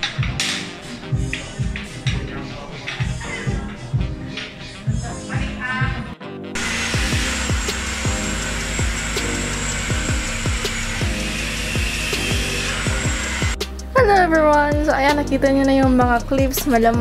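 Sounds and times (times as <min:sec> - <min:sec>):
music with thumping beat: 0:00.0 - 0:17.0.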